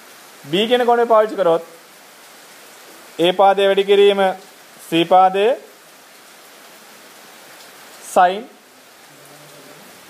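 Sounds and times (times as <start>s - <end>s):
recording noise hiss: 0.0s - 10.0s.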